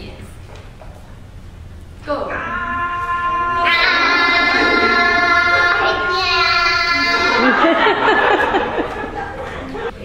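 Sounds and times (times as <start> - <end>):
high-pitched voice singing: 2.3 - 7.6.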